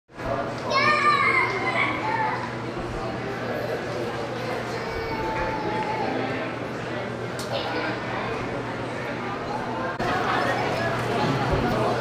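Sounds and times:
crowd chatter echoing in hall: 0:00.1 - 0:12.0
child's high-pitched voice: 0:00.7 - 0:02.5.

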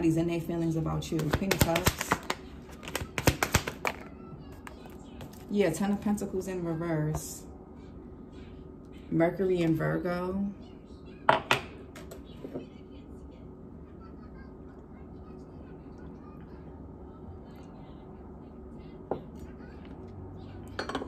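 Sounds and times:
faint steady hum: 0:00.0 - 0:21.0.

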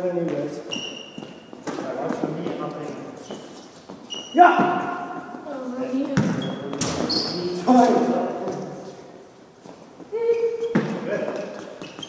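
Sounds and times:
footsteps running on gym floor: 0:00.1 - 0:05.0.

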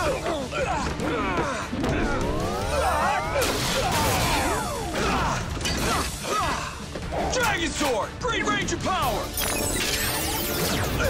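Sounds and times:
music: 0:00.0 - 0:11.0.

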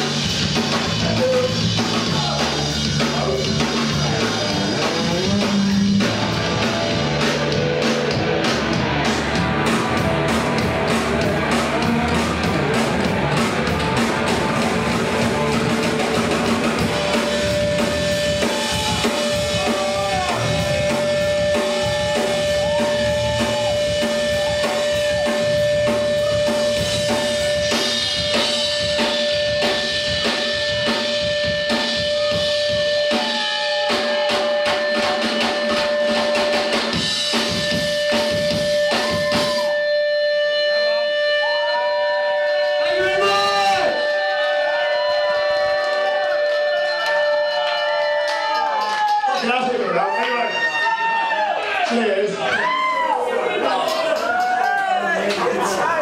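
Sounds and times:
electric guitar: 0:00.0 - 0:49.3
punk rock band playing live: 0:00.0 - 0:49.7
pounding drum kit: 0:00.0 - 0:51.6
people shouting: 0:18.2 - 0:24.9, 0:32.0 - 0:35.9, 0:38.8 - 0:39.7, 0:41.4 - 0:56.0.

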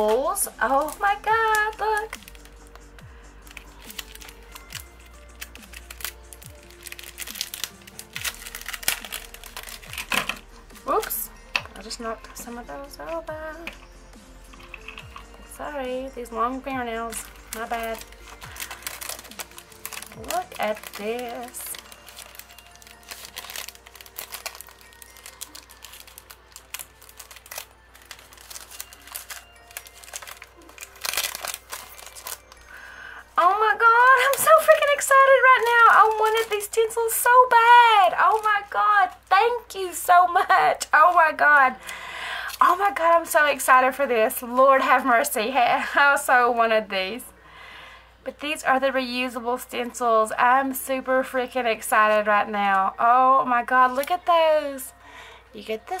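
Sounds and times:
plastic packet crinkling: 0:00.0 - 0:12.4, 0:13.0 - 0:15.5, 0:16.8 - 0:43.7
background music with steady beat: 0:00.0 - 0:56.0.

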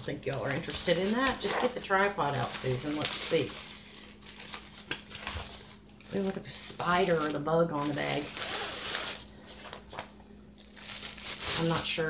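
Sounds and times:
fabric bag rustling: 0:00.2 - 0:12.0.

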